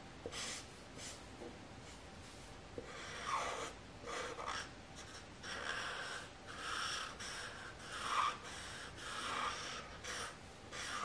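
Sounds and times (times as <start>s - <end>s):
marker rubbing on paper: 0.3s - 1.2s, 2.8s - 11.0s.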